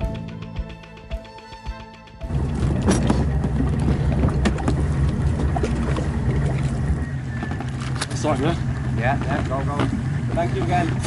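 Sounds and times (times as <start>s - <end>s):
outboard motor running: 2.2s - 11.0s.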